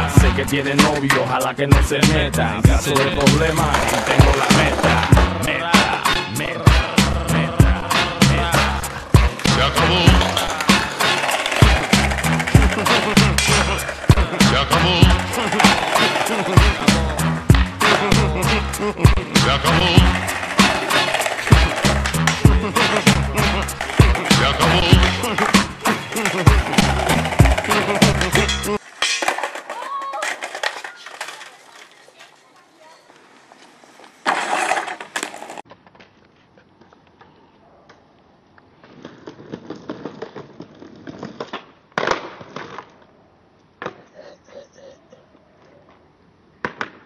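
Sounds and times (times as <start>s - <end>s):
rap music with heavy beat: 0.0s - 28.8s
skateboard rolling: 0.0s - 37.5s, 38.5s - 44.0s
skateboard noise bursts: 2.8s - 7.2s, 7.9s - 35.6s.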